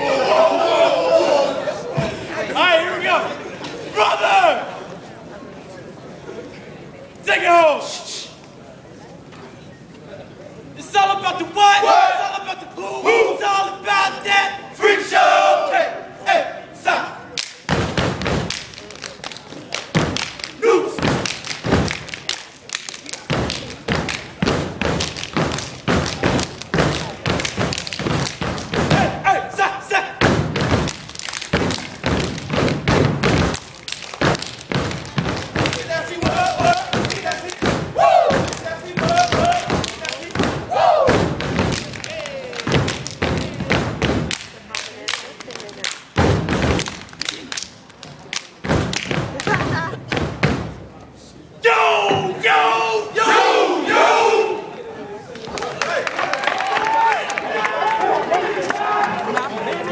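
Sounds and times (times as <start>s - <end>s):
group chanting: 14.8s - 17.1s, 51.6s - 54.8s
hand claps and slaps: 17.3s - 29.1s, 30.2s - 49.8s
rhythmic stomps: 17.4s - 50.9s.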